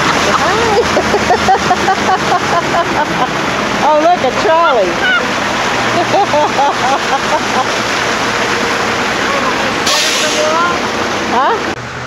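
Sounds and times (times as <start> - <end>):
bus passing close by: 0.0 - 12.0.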